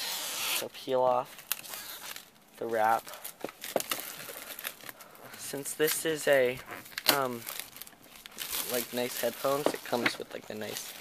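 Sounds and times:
plastic shrink-wrap crinkling: 0:01.2 - 0:11.0.

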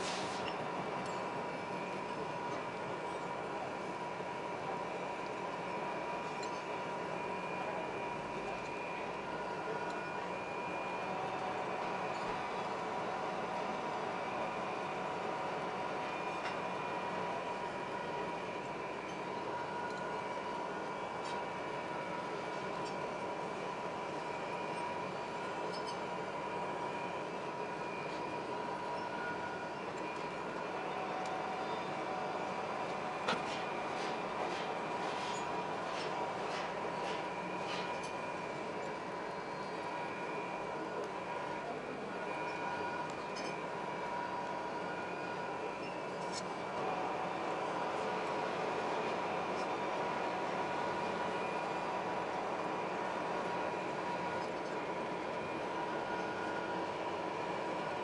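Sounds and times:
metal lathe whining: 0:03.1 - 0:58.0.

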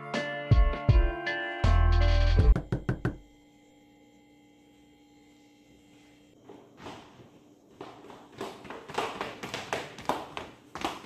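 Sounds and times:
music playing: 0:00.0 - 0:03.2
sharp knocks: 0:02.5 - 0:03.2.

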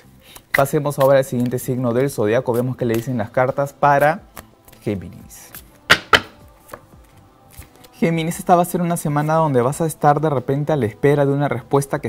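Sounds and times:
cards tapping on table: 0:05.9 - 0:06.9.

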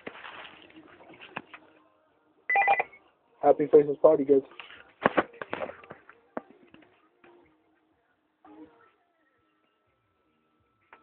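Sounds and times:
mobile phone ringtone: 0:02.5 - 0:03.0.

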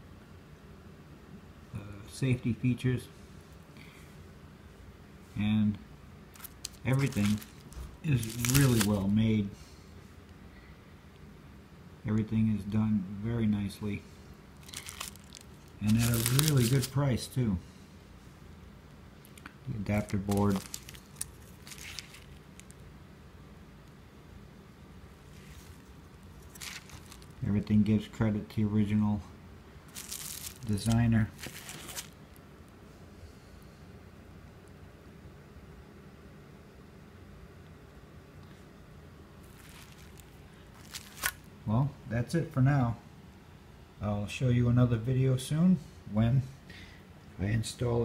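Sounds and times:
faint low hum and hiss: 0:00.0 - 0:48.0
bubble wrap crinkling: 0:06.3 - 0:09.2, 0:14.6 - 0:17.0, 0:19.8 - 0:22.8, 0:25.2 - 0:27.6, 0:29.9 - 0:32.4, 0:39.4 - 0:41.5.

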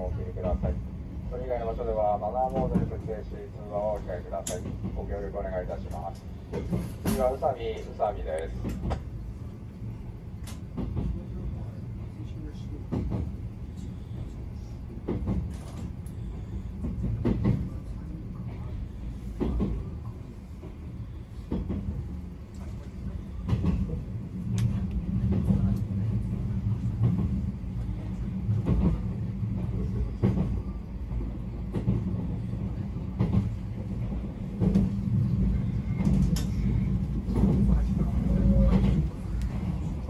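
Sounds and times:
train rumble: 0:00.0 - 0:40.0.

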